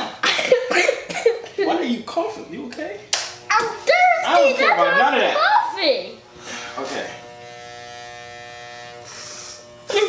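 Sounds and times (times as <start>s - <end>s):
electric hair clippers buzzing: 0.0s - 10.0s
hiss: 9.1s - 9.6s.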